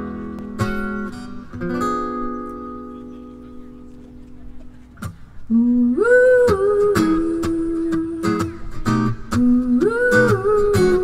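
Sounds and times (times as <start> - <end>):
acoustic guitar strums: 0.0 - 11.0
woman singing wordless vocalise: 5.5 - 8.4, 9.3 - 11.0.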